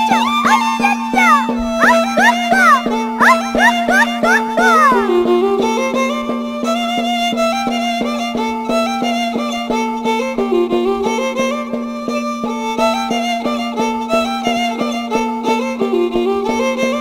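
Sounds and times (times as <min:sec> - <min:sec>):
violin lively melody: 0:00.0 - 0:17.0
hand drum beat: 0:00.2 - 0:05.2.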